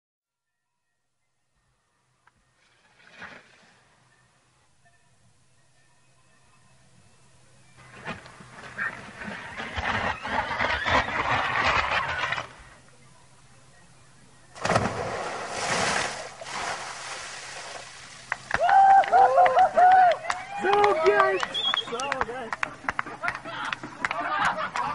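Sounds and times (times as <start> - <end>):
rushing slide noise: 8.0 - 12.6
splash into pool: 14.6 - 19.0
people shouting and whooping: 18.5 - 22.2.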